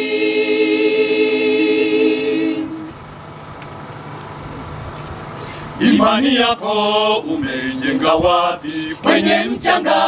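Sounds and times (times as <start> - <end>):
a cappella choir singing: 0.0 - 3.1, 5.8 - 10.0
low steady background hum: 0.0 - 10.0.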